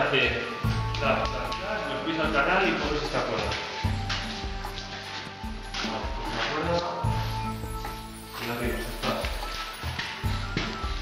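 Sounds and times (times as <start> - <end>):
music with sustained notes: 0.0 - 11.0.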